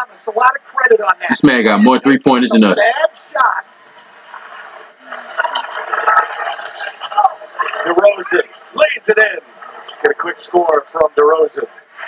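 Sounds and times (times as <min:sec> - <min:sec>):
commentator talking: 0:00.0 - 0:03.6
arena crowd noise: 0:00.0 - 0:12.0.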